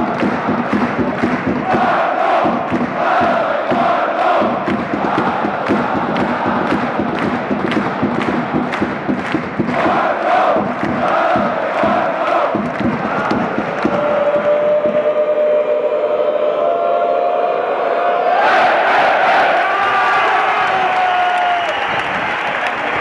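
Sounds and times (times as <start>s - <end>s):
crowd singing long held note: 0.0s - 8.8s, 9.6s - 20.0s
stadium crowd chanting: 0.0s - 20.5s.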